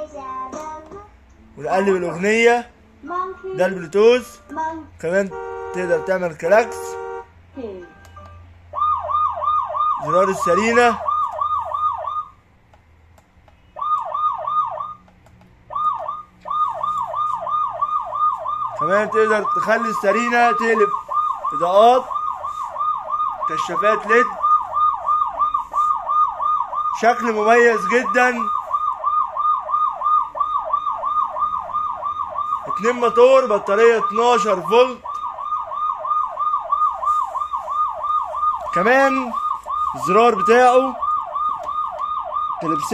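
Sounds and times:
electronic police siren wail: 8.7s - 12.4s, 13.8s - 15.1s, 15.7s - 42.9s.

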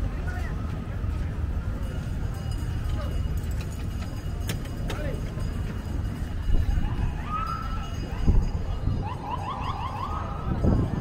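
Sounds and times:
alarm siren rising chirps: 8.9s - 11.0s.

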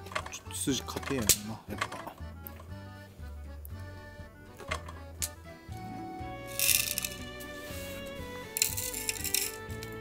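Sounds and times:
background music: 0.0s - 10.0s
grains rattling into wooden bowl: 6.5s - 7.9s, 8.5s - 10.0s.

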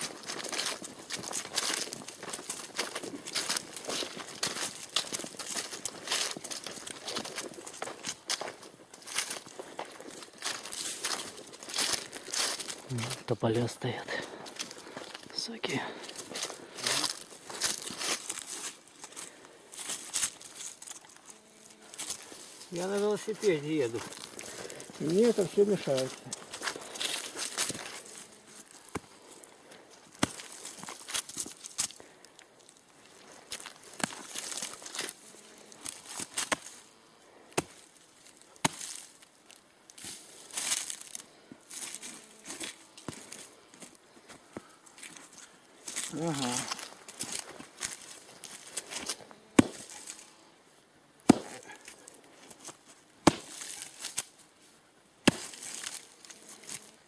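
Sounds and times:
soil and leaves scraping and rustling: 0.0s - 57.0s
hand tool chopping into dirt: 30.2s - 30.5s, 36.3s - 36.7s, 37.5s - 37.8s, 49.0s - 50.2s, 51.2s - 51.7s, 53.2s - 54.3s, 55.2s - 56.0s.

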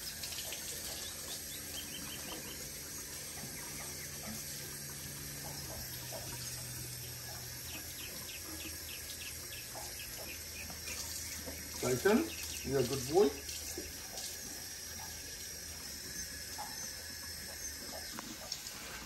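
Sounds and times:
faucet running into a sink: 0.0s - 18.9s.

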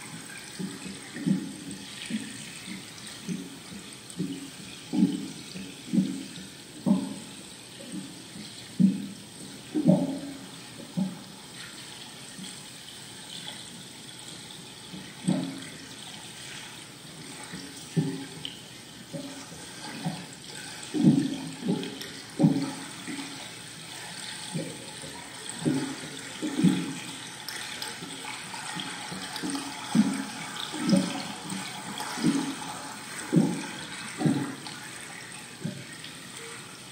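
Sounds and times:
water gurgling and sloshing: 0.0s - 36.9s.

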